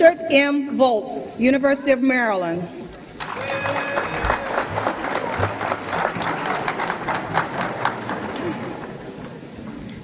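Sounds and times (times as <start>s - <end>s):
audience applauding: 3.2s - 9.5s.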